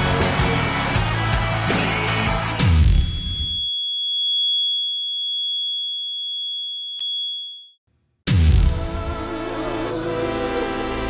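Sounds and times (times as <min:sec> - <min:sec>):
high electronic sine tone: 0:02.9 - 0:07.8.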